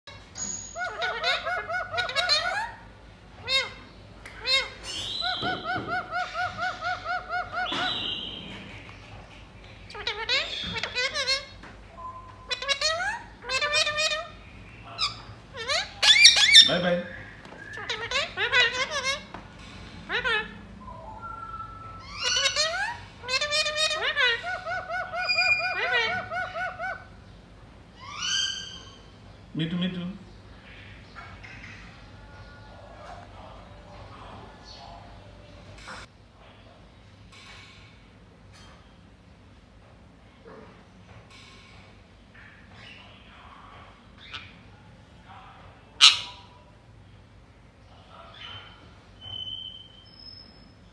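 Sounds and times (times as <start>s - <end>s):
parakeet calling: 0.1s - 36.1s, 44.2s - 44.7s, 46.0s - 46.7s, 48.2s - 50.9s.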